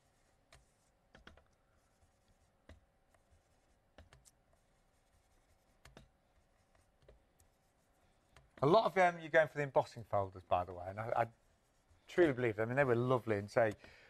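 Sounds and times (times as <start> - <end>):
brush dabbing on cardstock: 0.0 - 13.9.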